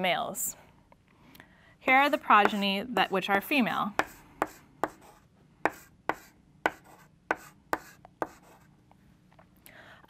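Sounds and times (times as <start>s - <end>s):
chalk scratching: 2.0s - 2.8s, 4.0s - 8.7s
chalk tapping on blackboard: 2.1s - 2.7s, 4.0s - 8.7s.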